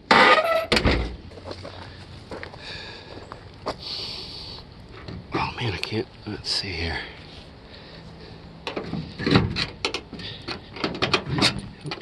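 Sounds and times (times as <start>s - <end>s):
knocks and clicks from car parts: 8.6s - 12.0s.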